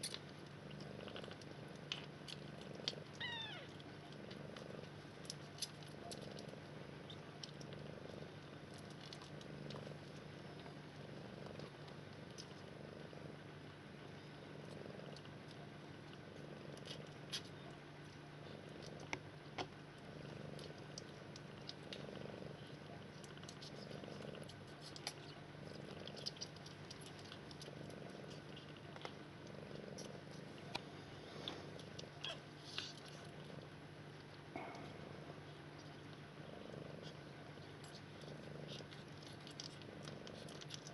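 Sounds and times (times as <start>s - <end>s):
small clicks and ticks: 0.0s - 10.7s, 11.4s - 12.7s, 23.2s - 33.3s, 37.8s - 40.9s
cat purring: 0.0s - 40.9s.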